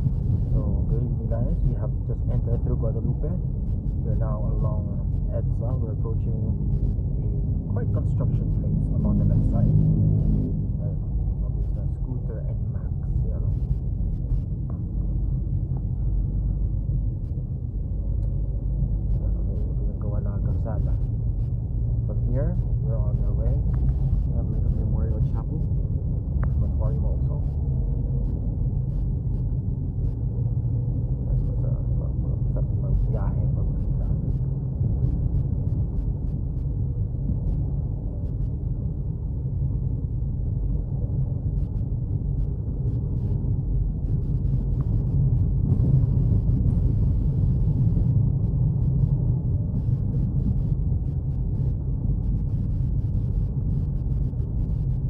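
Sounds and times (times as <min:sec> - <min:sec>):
road and engine noise in car: 0:00.0 - 0:55.0.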